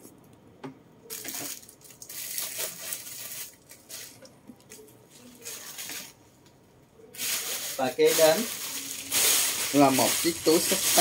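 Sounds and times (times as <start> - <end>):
plastic bag crinkling: 1.1 - 6.2, 7.2 - 11.0.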